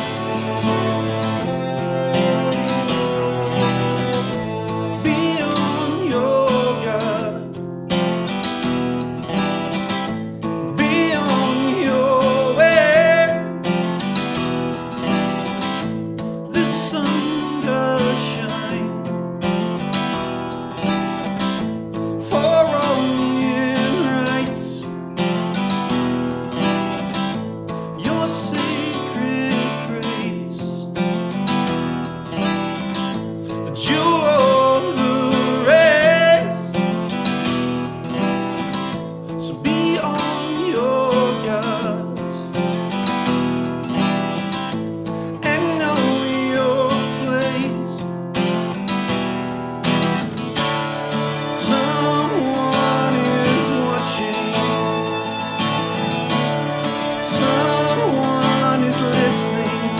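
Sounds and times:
cello: 0.0 - 7.4, 49.9 - 59.9
man singing: 0.0 - 8.4, 10.6 - 14.3, 16.4 - 19.8, 22.2 - 25.6, 27.9 - 31.0, 33.4 - 37.2, 39.3 - 42.8, 44.8 - 48.2, 51.1 - 59.9
violin: 0.0 - 30.6, 31.2 - 59.9
acoustic guitar strumming: 0.0 - 59.9.

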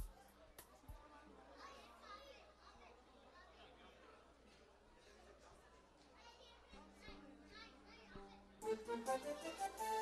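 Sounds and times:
faint crowd chatter: 0.0 - 10.0
children's voices: 1.5 - 3.8
live band music: 8.6 - 10.0.

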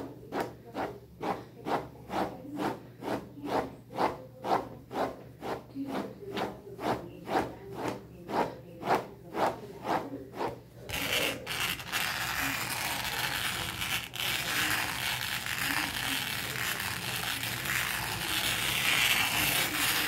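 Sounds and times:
bristle brush scratchy rubbing: 0.0 - 20.0.

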